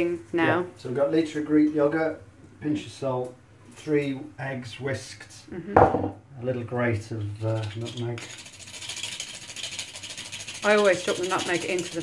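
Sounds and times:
nutmeg rasping on metal grater: 7.6 - 12.0.

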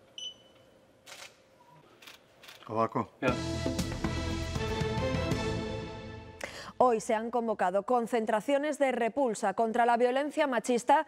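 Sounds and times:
barcode scanner beep: 0.2 - 0.5.

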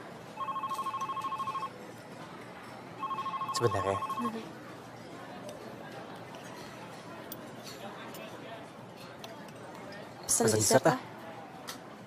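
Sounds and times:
phone ringing electronic trill: 0.4 - 1.7, 3.0 - 4.4.

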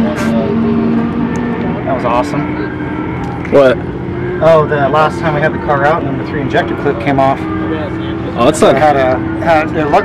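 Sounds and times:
engine drone: 0.0 - 10.0
voices: 0.0 - 10.0.

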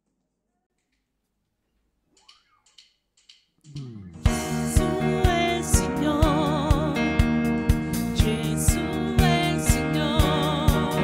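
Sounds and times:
drumstick count-in clicks: 2.2 - 4.2.

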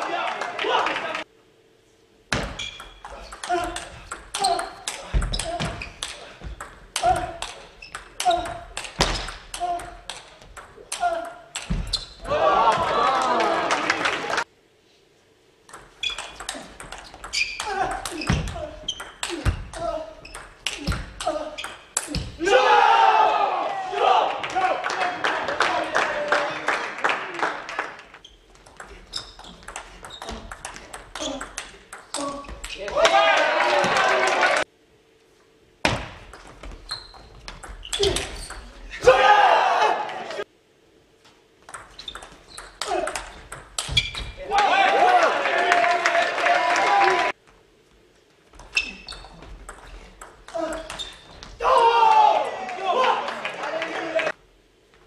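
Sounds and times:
ping pong ball hitting bats: 2.3 - 12.1, 15.7 - 22.3, 28.6 - 32.9, 41.6 - 44.3, 48.6 - 51.2
ping pong ball bouncing on table: 2.8 - 11.8.

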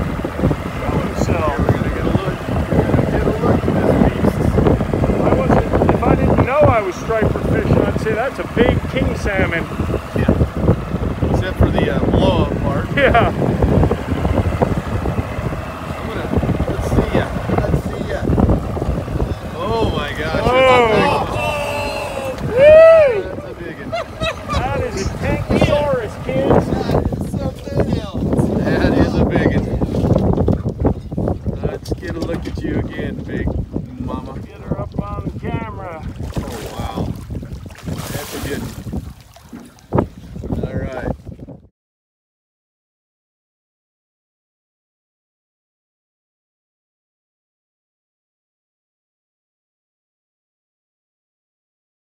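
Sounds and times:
wind buffeting microphone: 0.0 - 41.7
fish thrashing in water: 36.1 - 40.2.

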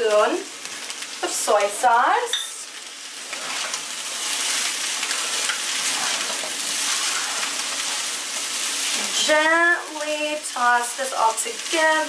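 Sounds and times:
rice sizzling in a pan: 0.0 - 12.0
spatula stirring: 3.1 - 9.6.

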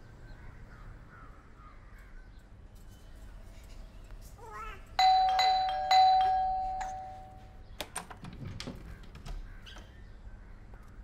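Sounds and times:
doorbell chime ringing: 5.0 - 7.5.

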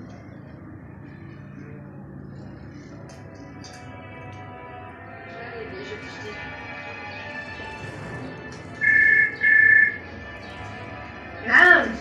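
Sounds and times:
quiet tv music: 0.0 - 12.0
loud electronic beeps: 8.8 - 10.2.

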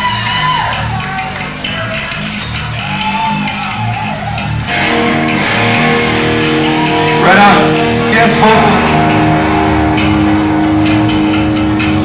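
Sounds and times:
electric guitar notes bending: 4.5 - 12.0
distorted electric guitar chord: 4.7 - 12.0.

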